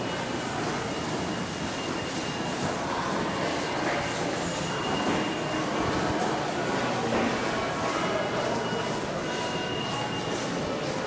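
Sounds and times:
subway train rumble and hiss: 0.0 - 11.0.

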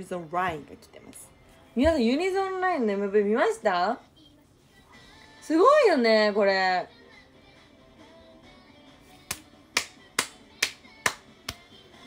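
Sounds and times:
faint music: 0.0 - 12.0
sharp hand claps: 9.2 - 11.8.

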